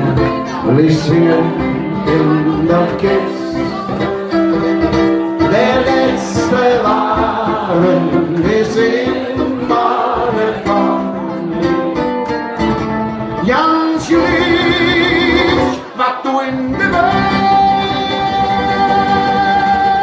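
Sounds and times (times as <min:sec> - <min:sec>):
man singing: 0:00.0 - 0:12.1, 0:13.2 - 0:20.0
acoustic guitar: 0:00.0 - 0:20.0.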